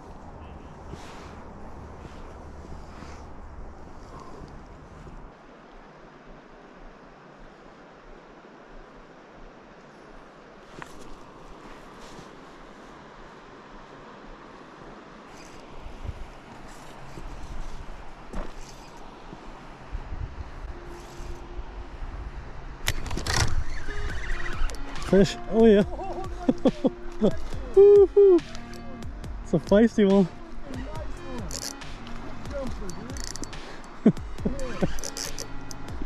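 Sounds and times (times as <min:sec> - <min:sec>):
wind rumbling on microphone: 0:00.0 - 0:29.6, 0:30.3 - 0:36.0
river current: 0:00.0 - 0:36.0
gear scuffing against microphone: 0:10.6 - 0:13.0, 0:15.3 - 0:19.6
fishing rod handling clicks: 0:28.4 - 0:28.9, 0:31.4 - 0:34.0, 0:34.6 - 0:36.0.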